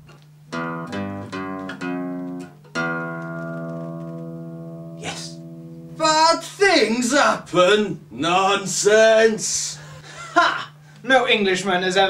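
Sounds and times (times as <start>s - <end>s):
acoustic guitar chord strum: 0.5s - 6.4s.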